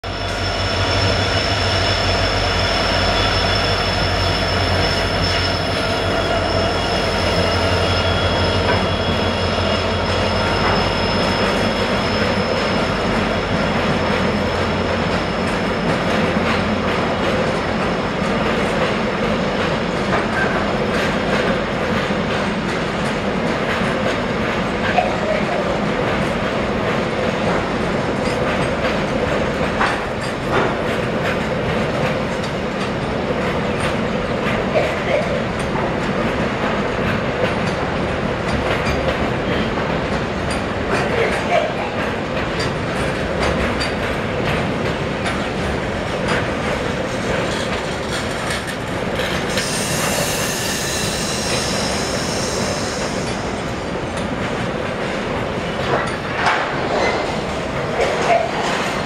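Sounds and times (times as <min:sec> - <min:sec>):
diesel locomotive engine rumbling: 0:00.0 - 0:59.0
train wheels on rails: 0:00.0 - 0:59.0.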